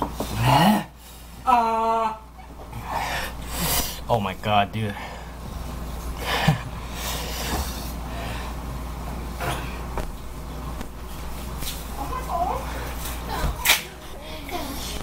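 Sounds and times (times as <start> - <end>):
steady low hum: 0.0 - 15.0
movement noises: 2.4 - 15.0.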